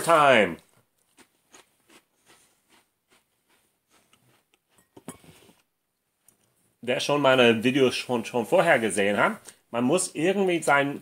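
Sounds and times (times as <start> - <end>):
cracker being chewed: 0.6 - 5.2.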